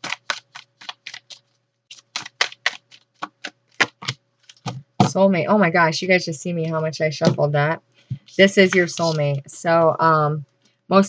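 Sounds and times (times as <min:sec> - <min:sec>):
cards being shuffled: 0:00.0 - 0:04.9, 0:08.1 - 0:09.4.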